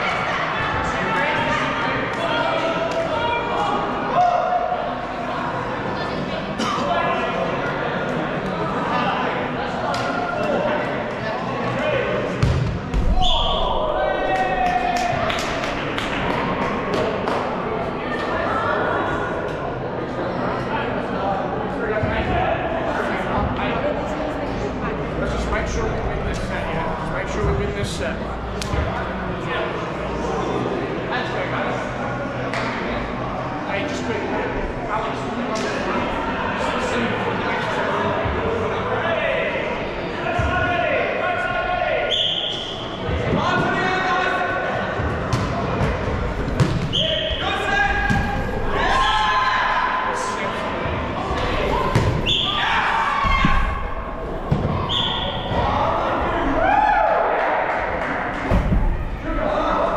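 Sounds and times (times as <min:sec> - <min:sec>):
referee's whistle blast: 0:42.1 - 0:42.8
balls bouncing on court floor: 0:45.3 - 0:46.9, 0:51.4 - 0:52.2, 0:54.5 - 0:55.6
players shouting: 0:46.9 - 0:58.5
thuds of feet and balls: 0:54.4 - 0:55.7.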